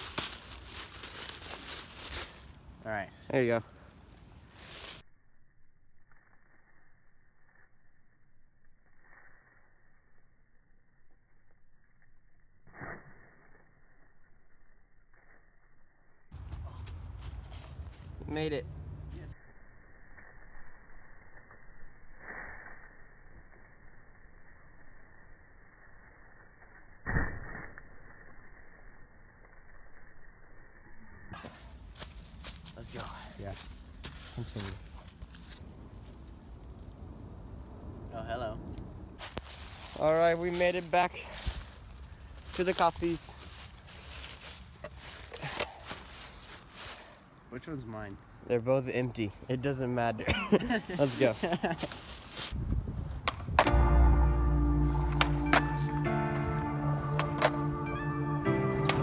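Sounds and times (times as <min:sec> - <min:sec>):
dry leaves crunching underfoot: 0:00.0 - 0:03.0, 0:03.8 - 0:05.0, 0:16.3 - 0:19.4, 0:31.4 - 0:36.9, 0:39.2 - 0:47.5, 0:50.6 - 0:52.6.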